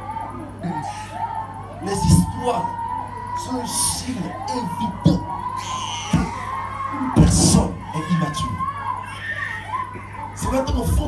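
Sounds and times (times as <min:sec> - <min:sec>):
electrical hum: 0:00.0 - 0:11.0
man preaching into microphone: 0:01.8 - 0:02.8, 0:03.4 - 0:05.3, 0:07.2 - 0:08.6, 0:10.4 - 0:11.0.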